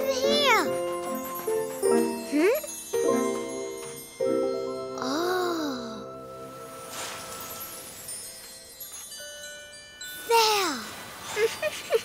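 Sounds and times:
tinkling chime music: 0.0 - 12.0.

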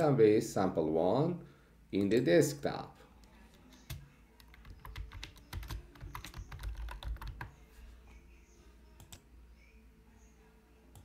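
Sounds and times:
computer keyboard typing: 3.2 - 7.6.

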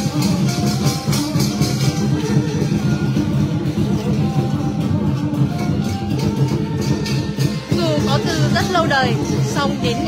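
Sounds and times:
drums and cymbals playing: 0.0 - 10.0.

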